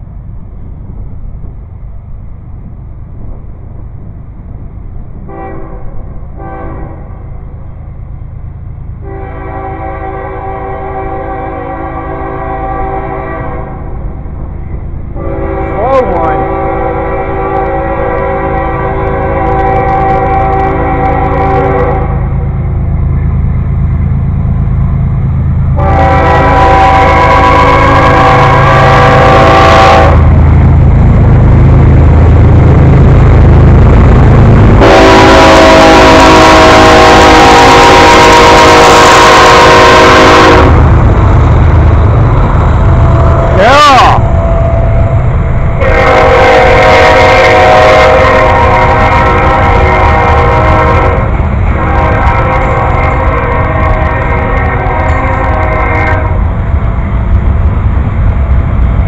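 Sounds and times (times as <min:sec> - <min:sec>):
train rumbling past: 0:00.0 - 0:59.0
locomotive air horn blasts: 0:05.3 - 0:07.1, 0:09.0 - 0:13.9, 0:15.2 - 0:22.4, 0:25.8 - 0:30.3, 0:34.8 - 0:40.9, 0:45.8 - 0:56.5.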